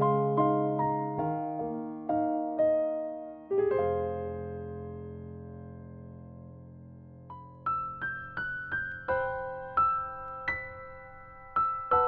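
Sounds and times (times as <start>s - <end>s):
slow sad piano ballad: 0.0s - 12.0s.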